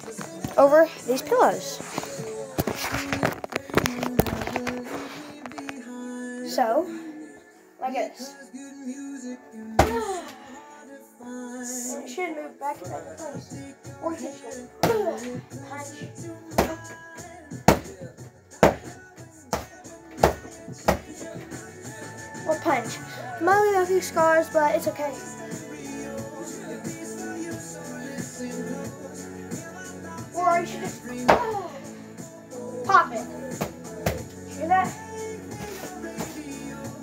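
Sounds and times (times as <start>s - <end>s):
background music: 0.0s - 37.0s.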